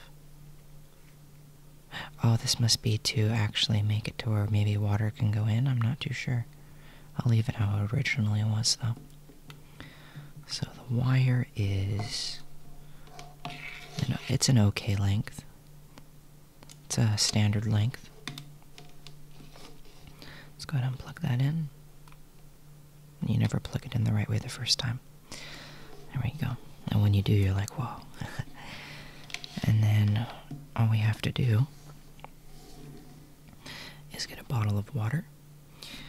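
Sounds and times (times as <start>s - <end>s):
faint low hum: 0.0s - 36.0s
cable rustling: 11.7s - 14.5s, 16.6s - 20.2s, 25.4s - 30.8s, 31.7s - 33.6s.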